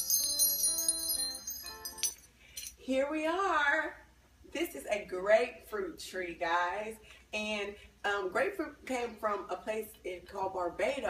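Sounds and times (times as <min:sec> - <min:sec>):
tinkling bells and chimes: 0:00.0 - 0:02.8.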